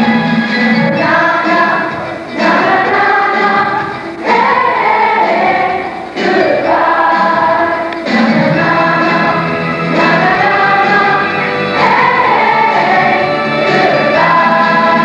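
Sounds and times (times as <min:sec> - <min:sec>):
chorus singing: 0:00.0 - 0:15.0.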